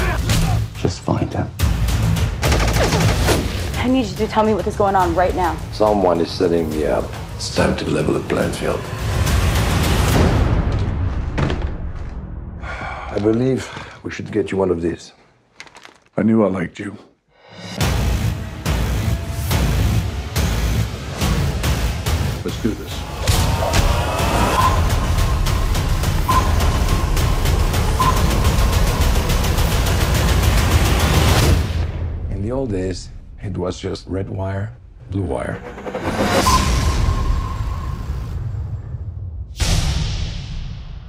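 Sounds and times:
driving trailer music: 0.0s - 13.2s, 17.3s - 41.0s.

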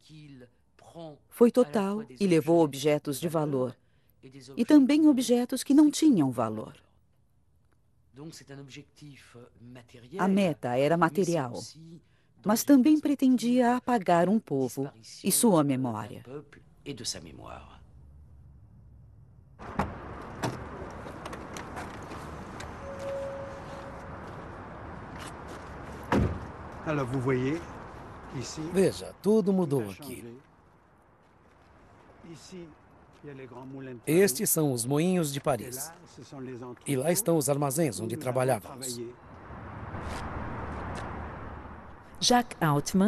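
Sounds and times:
city background hiss and rumble: 0.0s - 43.0s
outdoor noise: 0.0s - 43.0s
man's voice: 33.3s - 39.2s.

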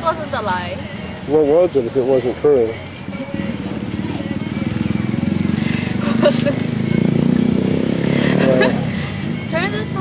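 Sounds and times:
small motorcycle engine passing: 3.0s - 10.0s.

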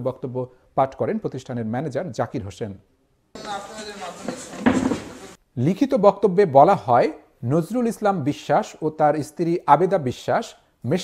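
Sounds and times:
man's voice-over: 3.4s - 4.9s
faint voices: 3.4s - 5.4s.

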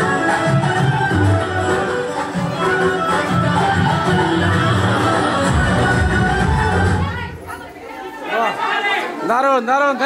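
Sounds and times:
dance music: 0.0s - 7.8s
people chattering: 0.0s - 10.0s.

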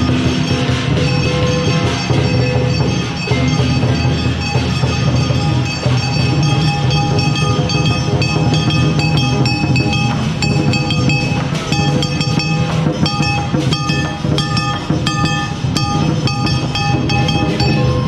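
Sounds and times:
cymbals clashing: 0.0s - 18.0s
gongs ringing: 0.0s - 18.0s
large drum beating: 0.0s - 18.0s.

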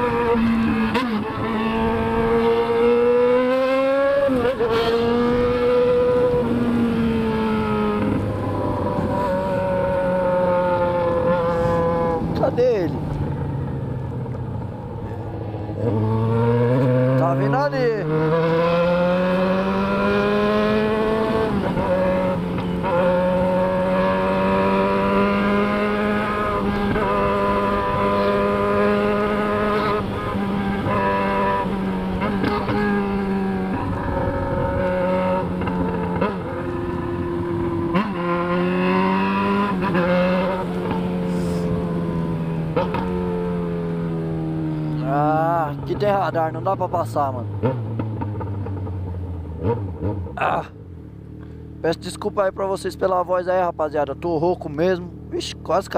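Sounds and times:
motorcycle engine revving: 0.0s - 55.9s
passing engine: 0.0s - 55.9s.

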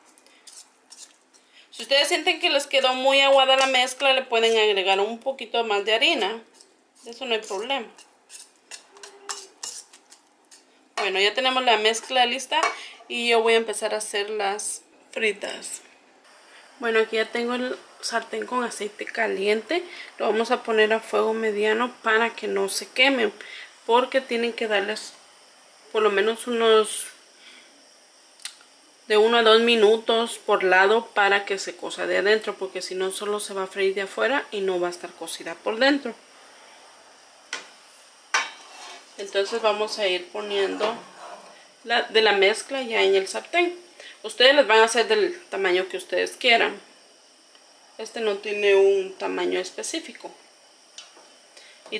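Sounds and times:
whisk stirring thick batter: 0.0s - 1.5s, 6.2s - 10.7s
whisk clinking against metal bowl: 7.0s - 10.2s.

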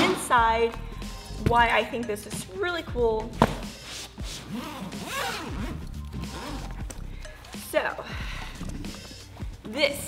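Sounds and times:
background music: 0.0s - 10.0s
bag zipper being pulled: 3.6s - 7.1s.

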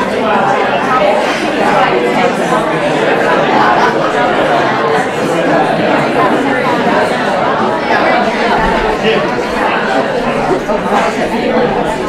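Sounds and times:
babble of chatter: 0.0s - 12.0s.

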